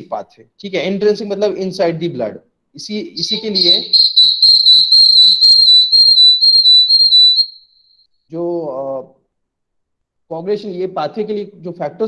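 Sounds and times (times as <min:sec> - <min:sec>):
high-pitched whistling tone: 0:03.2 - 0:07.7.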